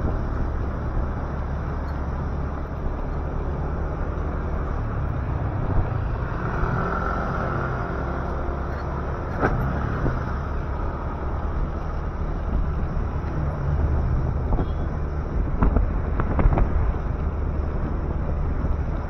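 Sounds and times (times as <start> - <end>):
road and wind noise: 0.0 - 19.0.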